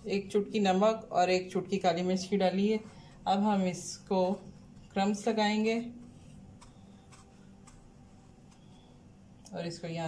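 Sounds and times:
low steady hum: 0:00.0 - 0:10.0
kebab rolled in breadcrumbs: 0:01.9 - 0:09.4.

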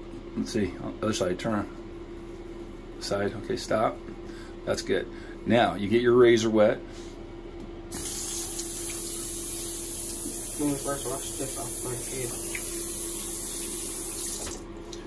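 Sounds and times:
tap running into sink: 0:12.2 - 0:14.6.

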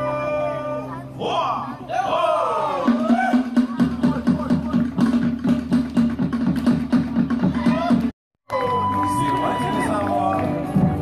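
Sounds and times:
fast beats on wooden drums: 0:02.8 - 0:08.1.

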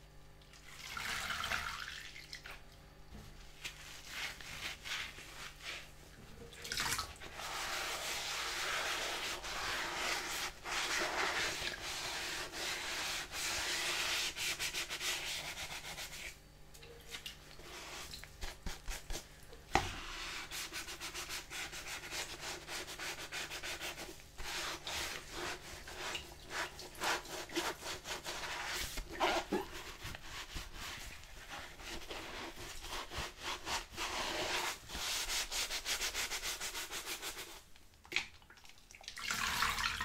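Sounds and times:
sponge scrubbing colander: 0:03.5 - 0:06.0, 0:06.7 - 0:16.4, 0:17.1 - 0:37.7.

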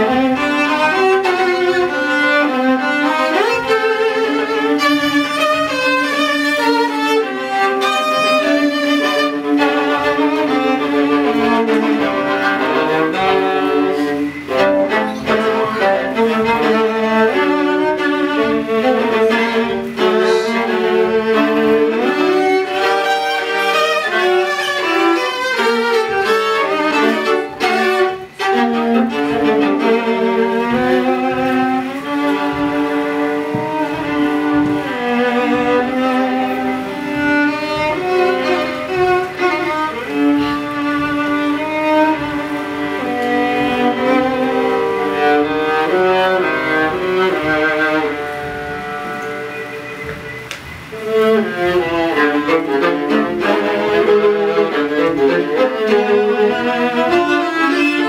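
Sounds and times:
two violas playing a duet: 0:00.0 - 0:58.0.

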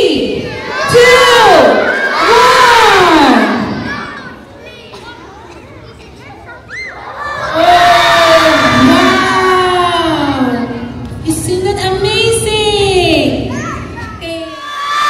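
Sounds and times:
scattered children's voices: 0:00.0 - 0:09.7, 0:13.3 - 0:15.0
children shouting together: 0:00.4 - 0:09.8.

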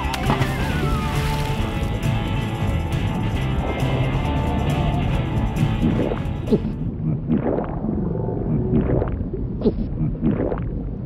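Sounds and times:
cartoon underwater bubbling: 0:05.8 - 0:11.0.

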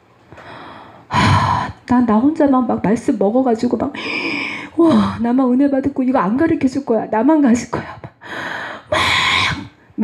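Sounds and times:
faint breath: 0:00.4 - 0:01.4, 0:04.0 - 0:04.8, 0:08.2 - 0:09.6.

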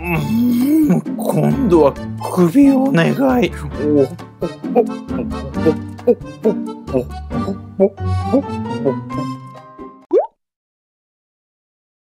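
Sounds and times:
background music with sustained notes: 0:00.0 - 0:10.0
rising bloop pop effect: 0:10.1 - 0:10.3.

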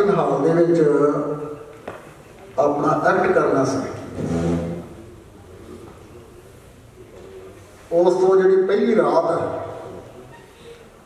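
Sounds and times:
man speaking into a microphone: 0:00.0 - 0:01.6, 0:02.6 - 0:04.1, 0:07.9 - 0:10.2.

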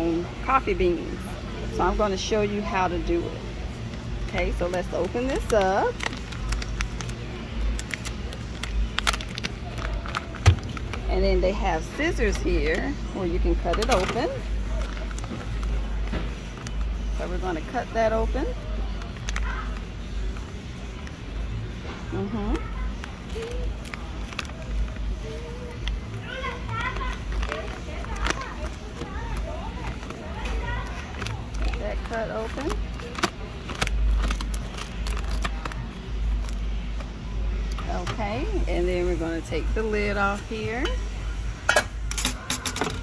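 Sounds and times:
low background hum: 0:00.0 - 0:43.0
plastic bag rustling: 0:04.2 - 0:21.0, 0:22.4 - 0:37.1.

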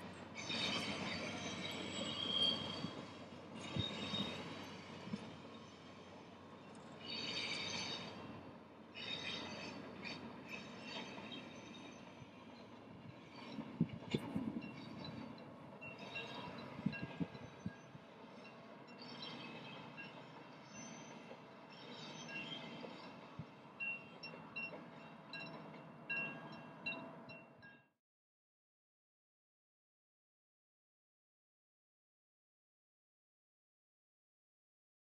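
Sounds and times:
train wheels rumbling on rail: 0:00.0 - 0:27.7
high-pitched wheel squeal: 0:00.2 - 0:06.2, 0:07.0 - 0:08.3, 0:09.0 - 0:12.3.

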